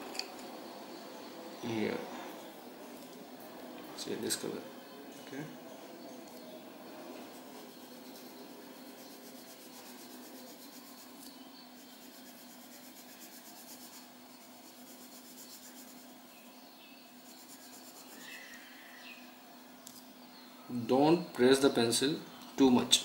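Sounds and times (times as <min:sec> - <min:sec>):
pencil scratching on paper: 0:07.2 - 0:16.2, 0:17.2 - 0:18.2.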